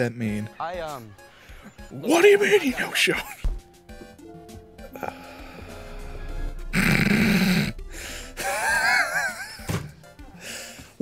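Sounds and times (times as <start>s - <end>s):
film soundtrack music: 0.0s - 11.0s
loud noisy sound effect: 5.7s - 9.6s.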